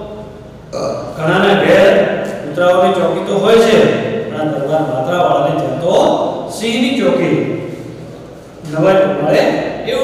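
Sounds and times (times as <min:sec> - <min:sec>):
man speaking: 0:00.8 - 0:07.9, 0:08.6 - 0:10.0.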